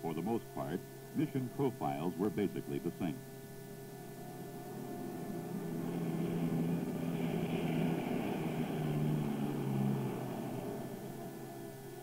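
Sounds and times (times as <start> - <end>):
turboprop engines droning: 0.0 - 12.0.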